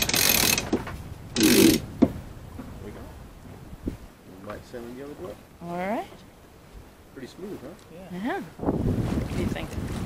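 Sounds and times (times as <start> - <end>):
winch ratcheting clicks: 0.0 - 0.8, 1.4 - 1.8.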